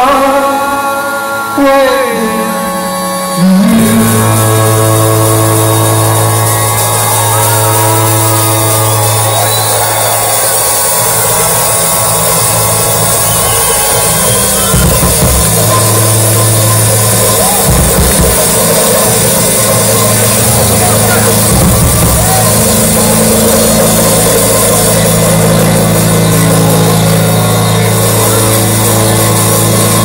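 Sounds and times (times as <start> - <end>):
held synth bass note: 0.0 - 30.0
loud live band music: 0.0 - 30.0.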